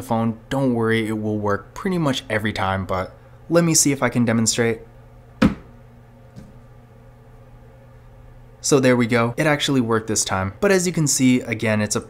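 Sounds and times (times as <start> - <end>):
smartphone tapping on table: 5.4 - 5.7.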